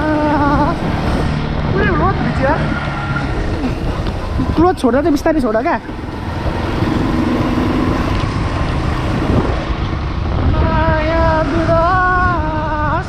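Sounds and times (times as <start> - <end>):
drawn-out pitched tone: 0.0 - 13.0
motorcycle running: 0.0 - 13.0
wind buffeting microphone: 0.0 - 13.0.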